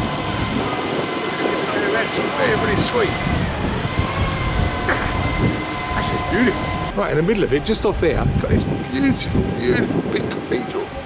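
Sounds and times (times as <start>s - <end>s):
low rumble: 0.0s - 11.0s
vehicle high whine: 0.0s - 11.0s.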